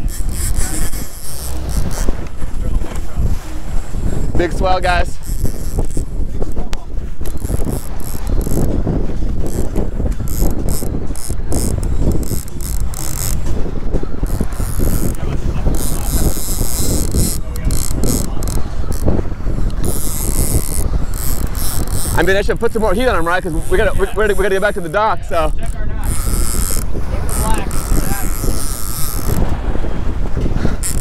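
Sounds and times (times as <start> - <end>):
fishing reel ratcheting: 0.0 - 2.4, 3.8 - 6.2, 7.2 - 13.6, 14.2 - 29.6, 30.7 - 31.0
wind and sea rushing: 0.0 - 31.0.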